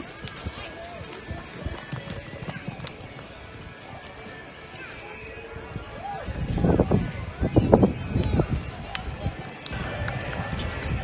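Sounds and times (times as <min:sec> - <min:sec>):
galloping horse hoofbeats in dirt: 0:00.0 - 0:05.0.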